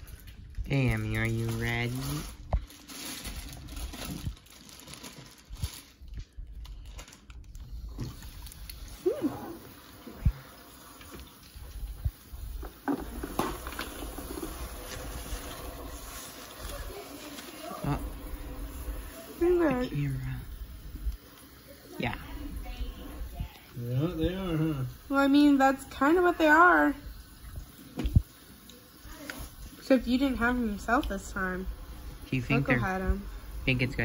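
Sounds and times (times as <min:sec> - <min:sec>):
water dripping: 0:07.8 - 0:34.0.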